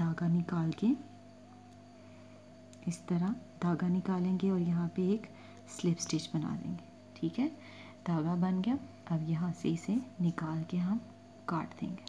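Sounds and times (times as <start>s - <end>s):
wavering high tone: 0.0s - 11.6s
faint background hum: 0.0s - 12.0s
person speaking: 2.8s - 12.0s.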